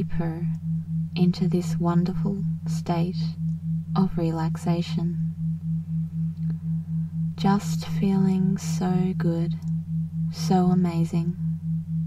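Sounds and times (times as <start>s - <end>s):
low sine hum: 0.0s - 12.0s
pulsing synthesized tone: 0.0s - 12.0s.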